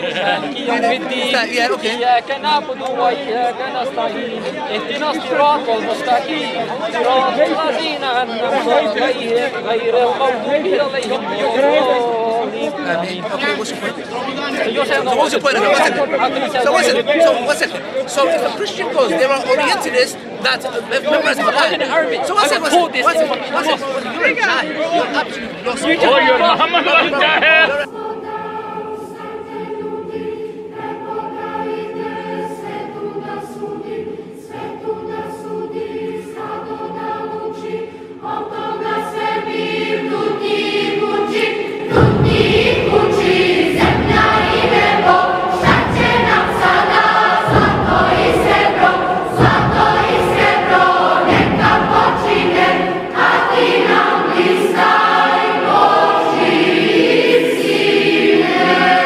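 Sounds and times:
choir singing religious song: 0.0 - 59.0
deep heavy accompaniment: 38.3 - 59.0.

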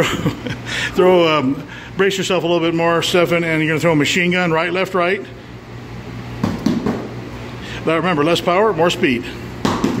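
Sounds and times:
fists striking a padded shield: 6.4 - 7.1, 9.6 - 10.0.

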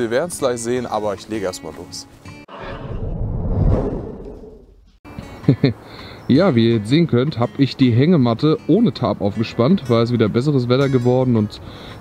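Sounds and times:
whoosh: 2.5 - 5.0.

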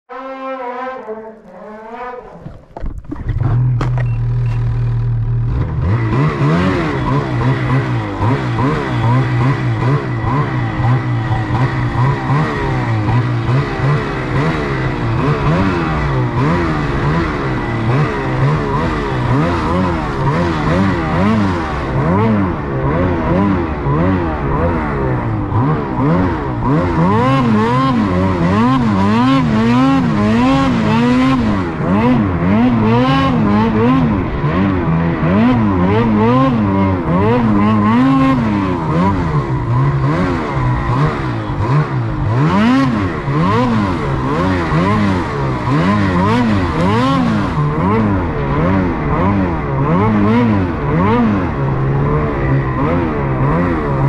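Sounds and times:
snowmobile engine revving: 0.1 - 54.0.

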